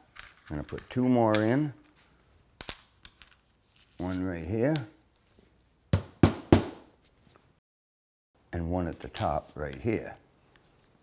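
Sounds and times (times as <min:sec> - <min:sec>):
hammer striking nail into wood: 0:06.0 - 0:06.8.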